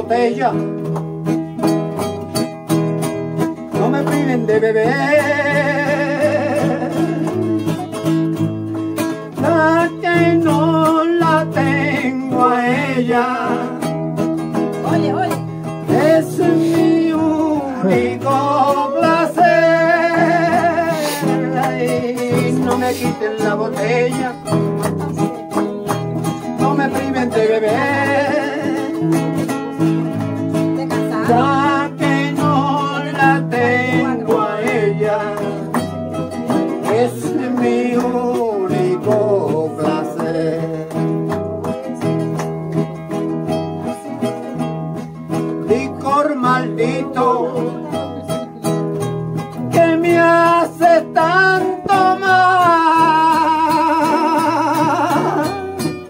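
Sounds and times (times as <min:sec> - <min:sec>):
picked guitar melody: 0:00.0 - 0:56.0
strummed acoustic guitar chords: 0:00.0 - 0:56.0.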